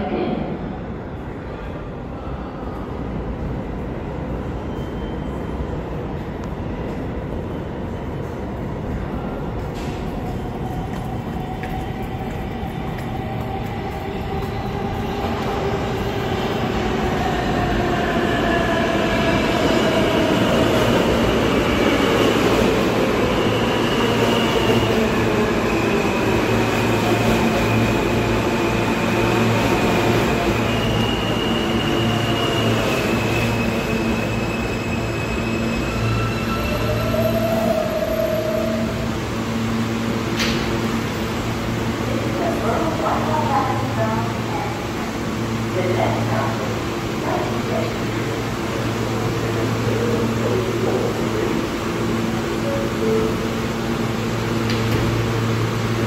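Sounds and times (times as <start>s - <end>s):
subway train rumble: 0.0s - 56.0s.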